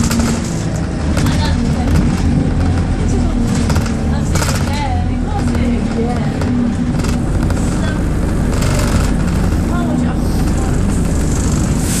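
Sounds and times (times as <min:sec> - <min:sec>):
bus engine running: 0:00.0 - 0:12.0
rattles: 0:00.0 - 0:12.0.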